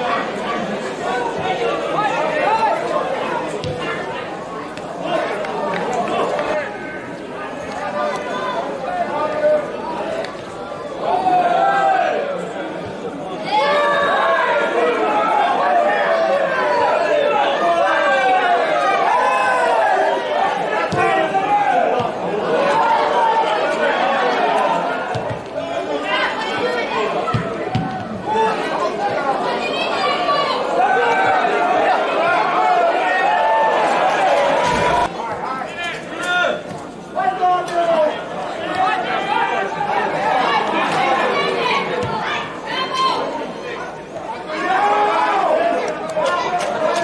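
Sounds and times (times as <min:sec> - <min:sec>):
crowd voices chattering and calling: 0:00.0 - 0:47.0
men shouting and calling out: 0:13.5 - 0:27.3.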